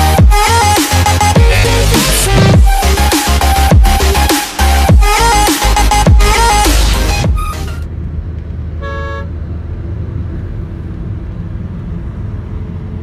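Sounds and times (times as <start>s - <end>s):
car road and engine rumble: 0.0s - 13.0s
vehicle horn toot: 8.8s - 9.3s.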